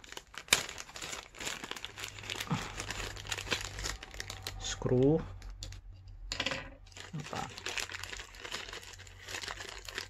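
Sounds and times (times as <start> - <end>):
plastic bag crinkling: 0.0 - 5.8, 6.8 - 10.0.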